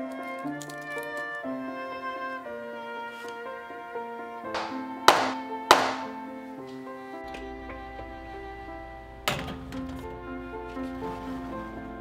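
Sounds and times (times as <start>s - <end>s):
background music: 0.0s - 12.0s
metal pan banging on wooden counter: 4.6s - 6.2s.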